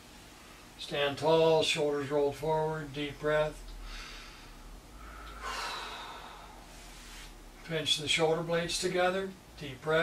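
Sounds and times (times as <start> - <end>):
person breathing in deeply: 3.8 - 7.3.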